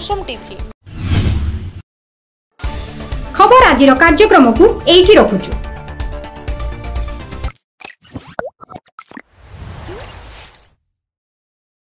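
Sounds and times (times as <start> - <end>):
whoosh: 0.9 - 1.8.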